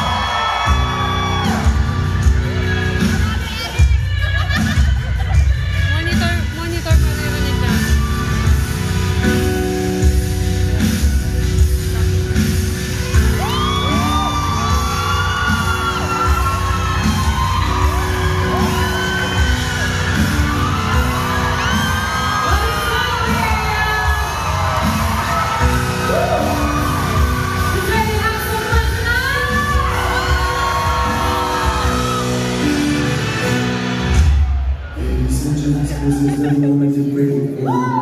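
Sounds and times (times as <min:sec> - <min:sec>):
amplified band music: 0:00.0 - 0:37.8.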